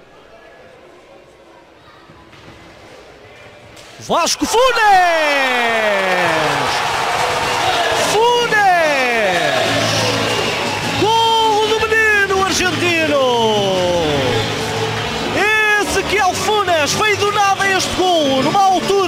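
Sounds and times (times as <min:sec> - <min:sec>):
man shouting excitedly: 0:04.1 - 0:06.8, 0:08.0 - 0:09.6
crowd cheering: 0:04.1 - 0:19.0.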